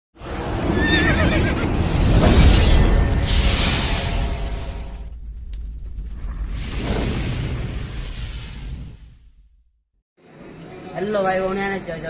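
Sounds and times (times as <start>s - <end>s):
horse whinny: 0.7s - 1.7s
loud low rumble: 1.6s - 9.8s.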